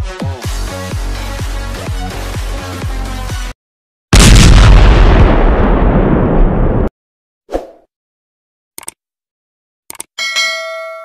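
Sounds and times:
explosion blast: 0:04.1 - 0:06.9.

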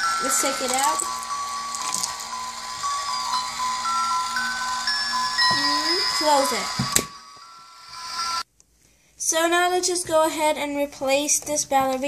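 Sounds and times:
music box chiming tune: 0:00.0 - 0:08.5.

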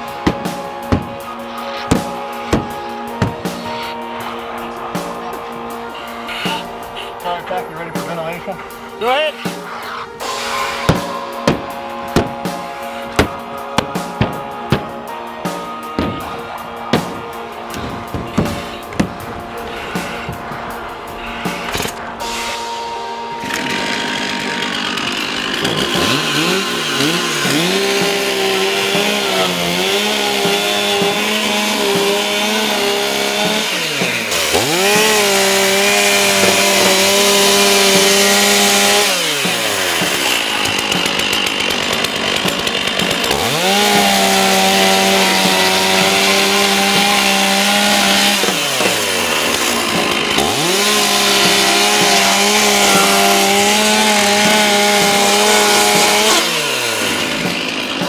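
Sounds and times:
chainsaw cutting plywood: 0:00.0 - 0:22.7, 0:23.4 - 0:58.0.

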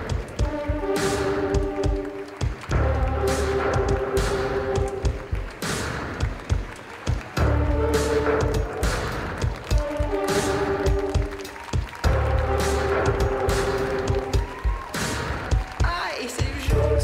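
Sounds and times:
instrumental runway music: 0:00.0 - 0:17.0.

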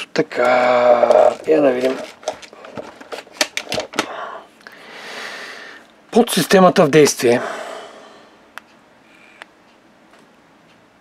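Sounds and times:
person speaking: 0:00.0 - 0:03.2, 0:06.1 - 0:08.0.

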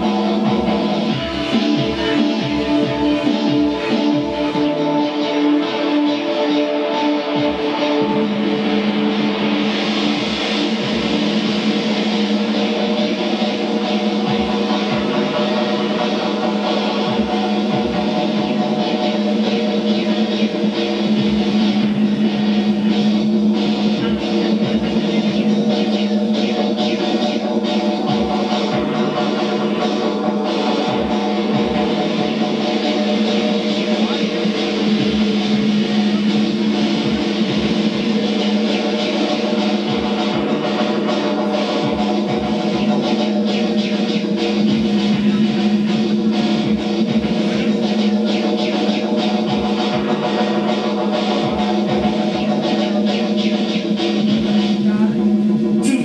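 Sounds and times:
synthesizer and keyboard chords: 0:00.0 - 0:56.0.

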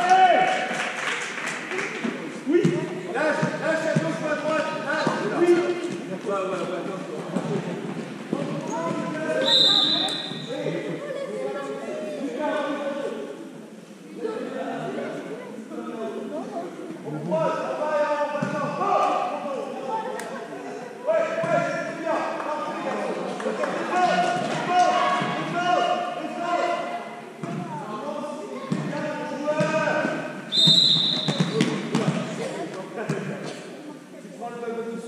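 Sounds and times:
referee's whistle blast: 0:09.4 - 0:10.5, 0:30.5 - 0:31.4.

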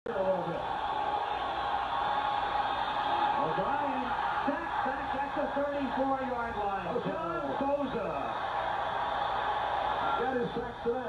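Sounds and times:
stadium crowd noise: 0:00.1 - 0:11.0.

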